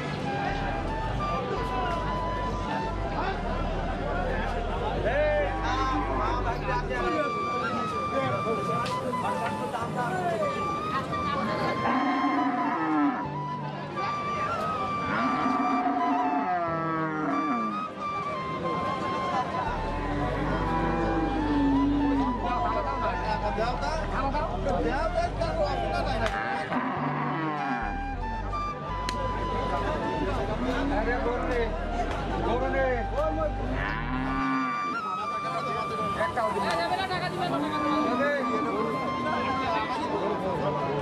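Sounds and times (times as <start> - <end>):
background music: 0.0 - 41.0
crowd chatter: 0.0 - 41.0
cow mooing: 11.8 - 13.3, 15.1 - 17.8, 20.0 - 22.4, 26.4 - 28.0, 33.8 - 35.0.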